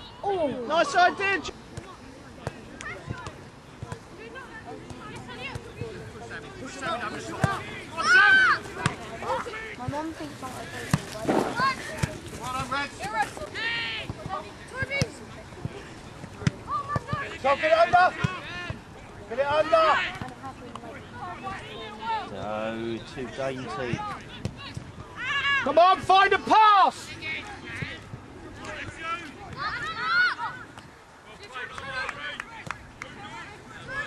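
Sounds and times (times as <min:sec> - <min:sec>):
people shouting and calling: 0:06.6 - 0:15.1, 0:23.7 - 0:28.0, 0:28.6 - 0:30.7.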